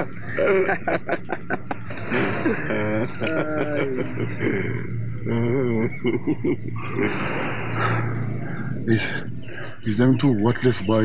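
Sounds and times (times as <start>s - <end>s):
steady low hum: 0.0s - 11.0s
man's wavering vocal call: 2.8s - 7.6s.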